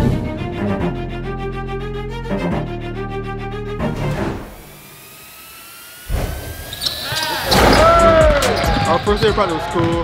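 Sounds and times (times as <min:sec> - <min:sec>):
shoe squeaks: 0:06.6 - 0:09.2
players' voices: 0:07.0 - 0:10.0.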